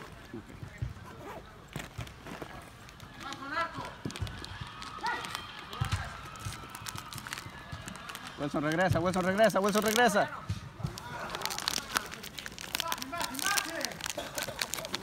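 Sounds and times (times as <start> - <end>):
footfalls on artificial turf: 0.0 - 14.0.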